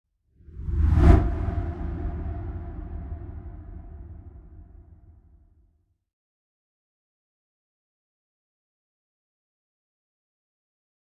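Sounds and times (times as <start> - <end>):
deep bass rumble: 0.6 - 5.1.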